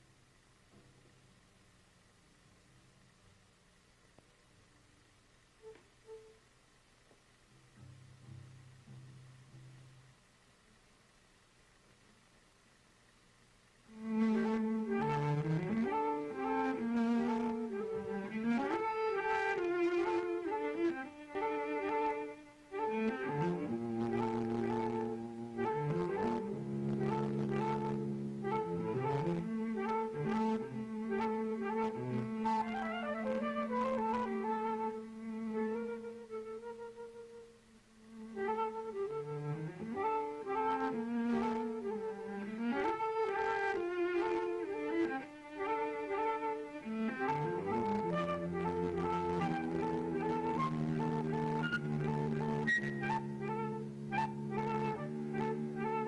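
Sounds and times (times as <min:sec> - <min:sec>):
cello: 0:13.9 - 0:56.0
flute: 0:13.9 - 0:56.0.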